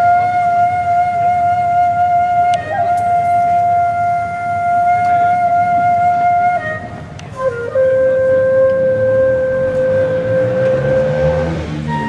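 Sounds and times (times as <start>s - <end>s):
flute holding long note: 0.0s - 12.0s.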